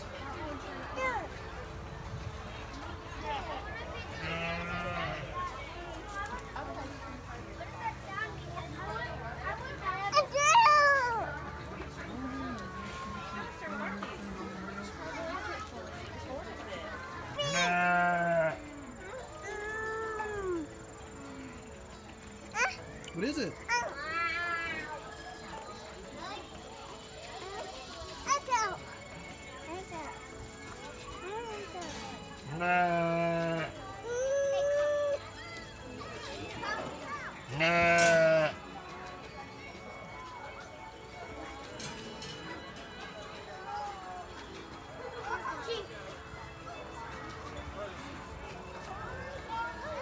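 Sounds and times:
chatter of people and children: 0.0s - 50.0s
farm animal bleating: 4.1s - 5.4s, 17.4s - 18.8s, 32.4s - 33.8s, 37.4s - 38.6s.

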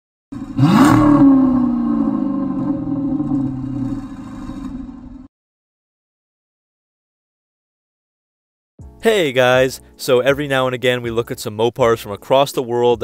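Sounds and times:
car engine revving: 0.3s - 5.3s.

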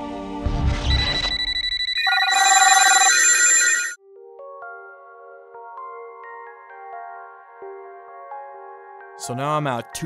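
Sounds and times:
trilling electronic ring: 0.9s - 4.0s.

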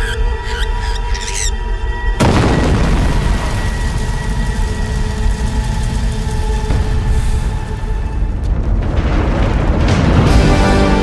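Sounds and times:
dramatic film score: 0.0s - 11.0s
loud boom with deep rumble: 2.2s - 10.2s.

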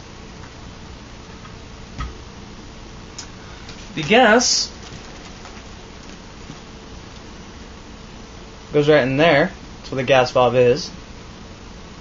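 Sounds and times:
faint constant hum: 0.0s - 12.0s
room hiss: 0.0s - 12.0s.

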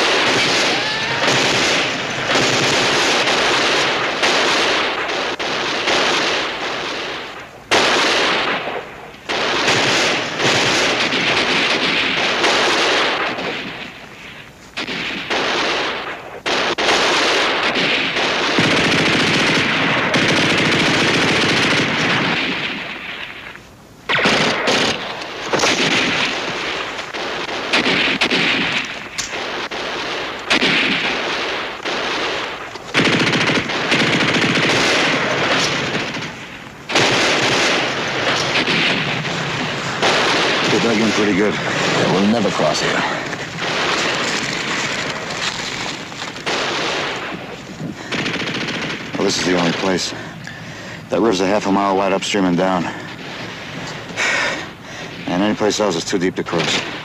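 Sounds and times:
machine-gun fire: 0.0s - 57.0s.

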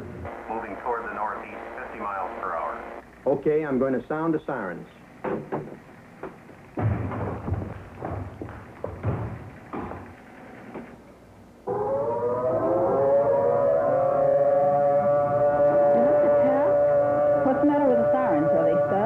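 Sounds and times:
irregular knocks and clatter: 5.2s - 11.0s
civil defense siren: 11.6s - 19.0s.

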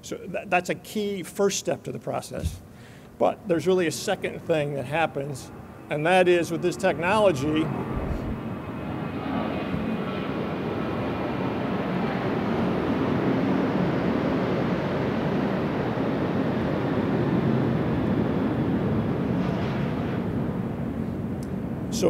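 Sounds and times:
jet aircraft roar: 3.5s - 22.0s.

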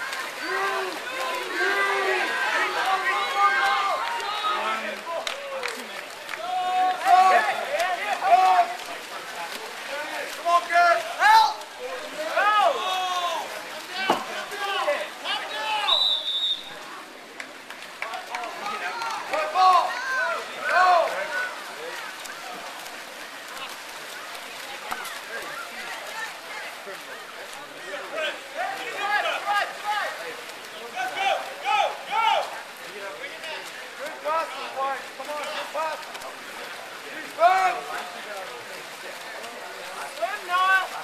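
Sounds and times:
people shouting and yelling: 0.0s - 17.0s, 18.0s - 22.8s, 27.8s - 38.4s, 39.8s - 41.0s
crowd noise: 0.0s - 41.0s
people talking and calling out: 0.0s - 41.0s
pool water noise: 0.0s - 41.0s.

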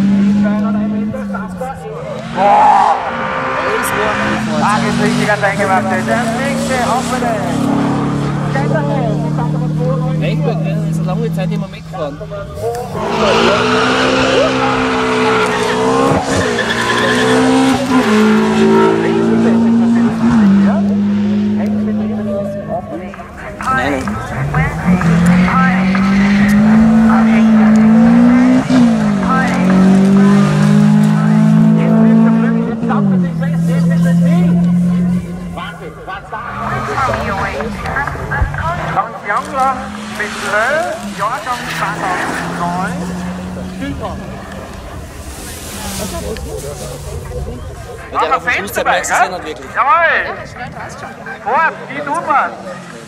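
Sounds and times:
people talking: 0.0s - 53.0s
sports car driving by: 0.0s - 53.0s.

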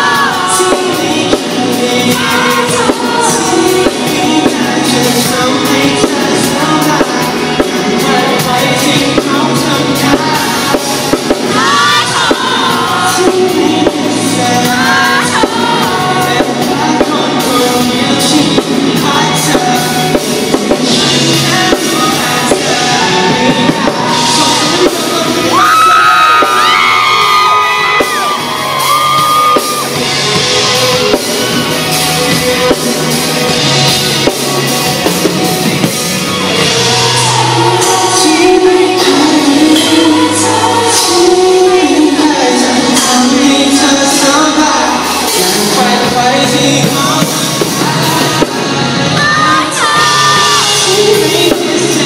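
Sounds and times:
man singing lead vocal: 0.0s - 52.0s
pop-rock band playing: 0.0s - 52.0s.

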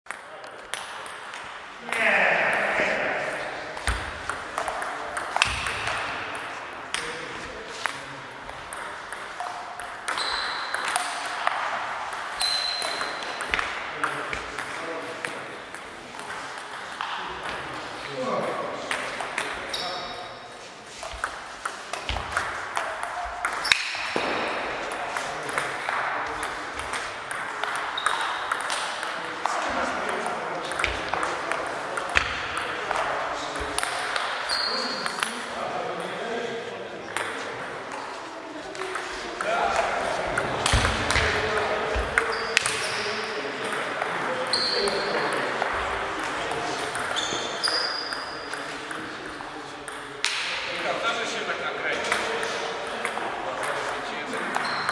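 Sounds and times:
person speaking: 1.8s - 5.4s.

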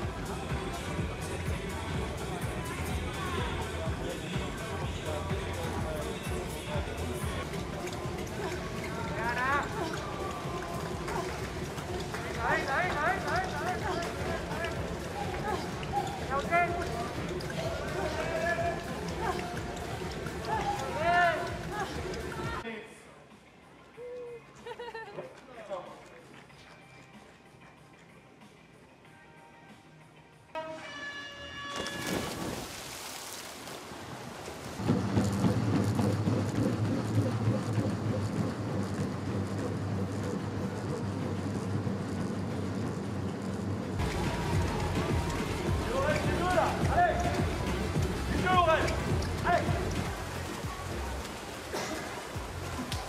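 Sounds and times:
treadmill belts and motors rumbling: 0.0s - 22.6s, 34.8s - 53.0s
fast footfalls on treadmills: 3.8s - 22.6s, 34.8s - 53.0s.

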